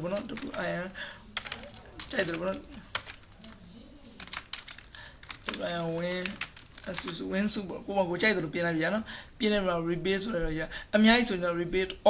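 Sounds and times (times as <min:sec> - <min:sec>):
computer keyboard clicks: 0:00.1 - 0:00.7, 0:01.4 - 0:03.2, 0:04.2 - 0:07.2.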